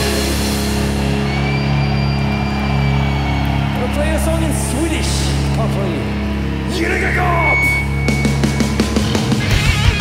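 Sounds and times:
drums and cymbals: 0.0s - 2.8s, 7.3s - 10.0s.

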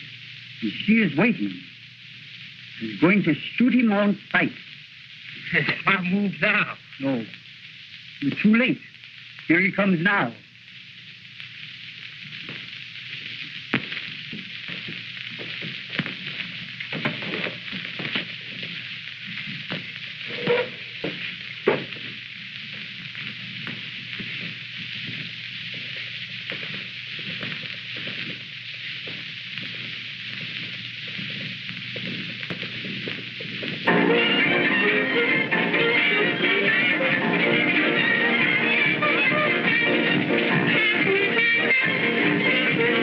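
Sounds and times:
crackles and pops: 0.0s - 43.0s
film soundtrack hiss: 0.0s - 43.0s.

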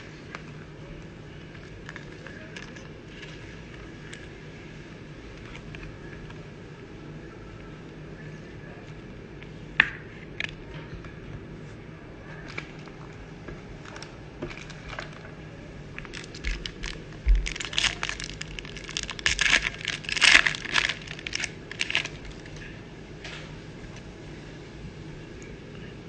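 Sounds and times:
foil wrapper tearing and crinkling: 16.0s - 22.6s.

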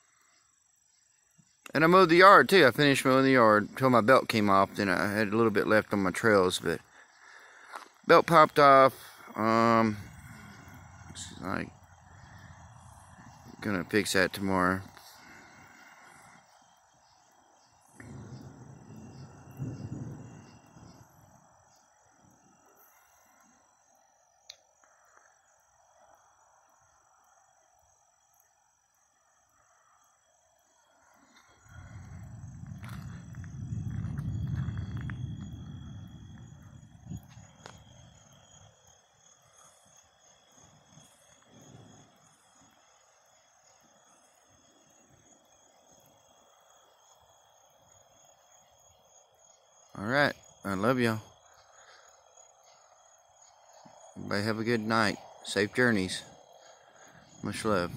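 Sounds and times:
night insects trilling: 0.0s - 57.9s
thunder rumbling: 17.9s - 21.7s, 31.6s - 38.3s, 57.0s - 57.9s.

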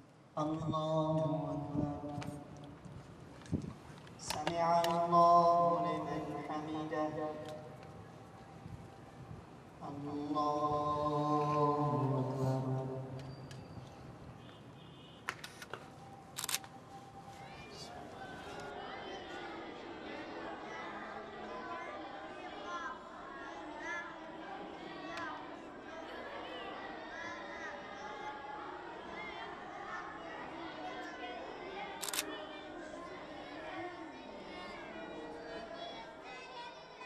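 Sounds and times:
children reciting: 4.2s - 13.2s, 17.0s - 37.0s
faint voices: 15.8s - 37.0s
camera shutter clicking: 16.4s - 16.7s, 32.0s - 32.3s.

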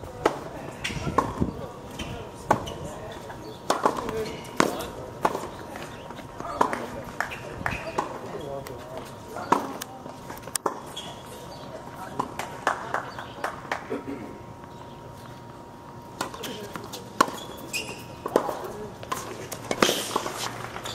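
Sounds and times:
murmur of voices: 0.0s - 20.4s
tennis balls struck and bouncing: 0.2s - 8.7s, 9.4s - 9.9s, 10.5s - 13.8s, 16.1s - 20.9s.

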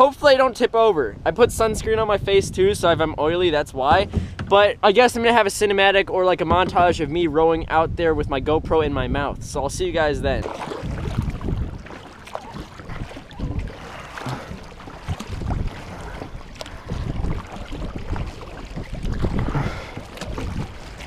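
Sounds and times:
wind rumbling on microphone: 0.0s - 21.0s
kayak paddle splashing water: 10.4s - 21.0s.

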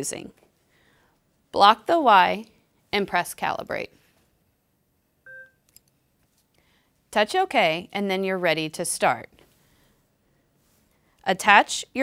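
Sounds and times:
short electronic beep: 5.3s - 5.6s.

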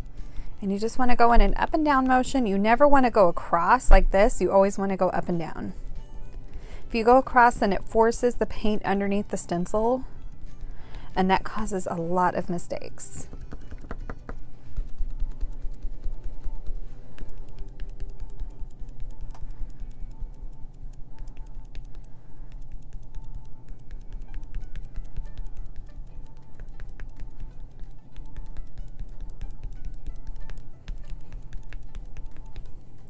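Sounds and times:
quiet background music: 0.0s - 33.0s
sponge tapping on stencil: 13.2s - 20.3s, 21.4s - 32.8s.

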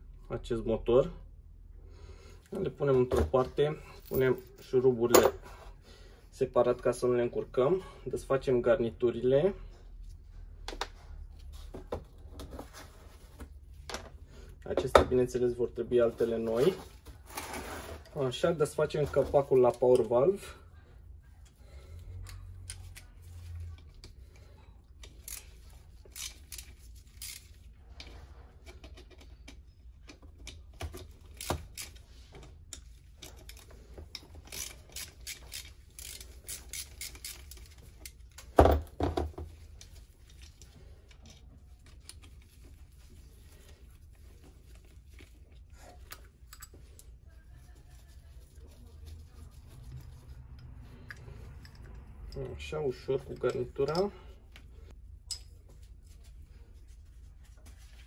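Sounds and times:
ratchet wrench clicking: 25.0s - 27.6s, 33.4s - 38.3s
small metal clinks and taps: 46.1s - 47.1s, 53.2s - 54.6s, 55.2s - 55.8s.

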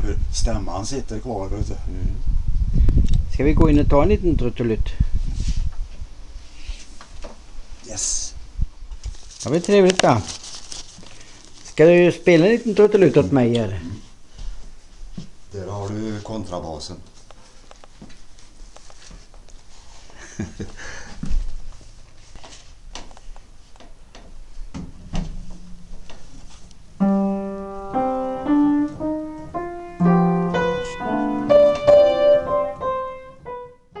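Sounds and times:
knocks and shuffling: 21.2s - 33.6s
piano notes and chords: 27.0s - 34.0s.

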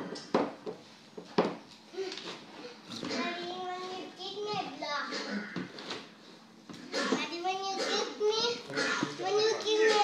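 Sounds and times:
toddler babbling: 7.1s - 10.0s.

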